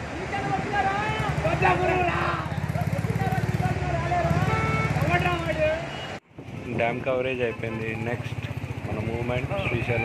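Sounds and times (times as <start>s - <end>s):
people talking: 6.7s - 10.0s.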